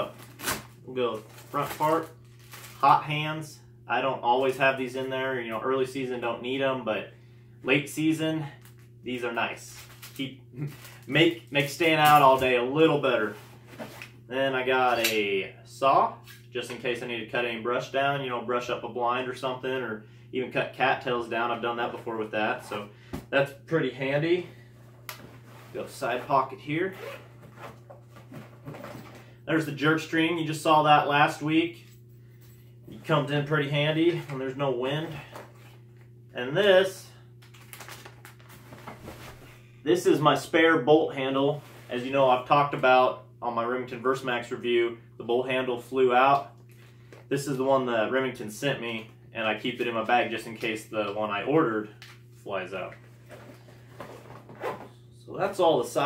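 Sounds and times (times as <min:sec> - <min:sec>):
low room hum: 0:00.0 - 0:56.0
zipper zipping: 0:26.9 - 0:29.0, 0:54.1 - 0:55.0.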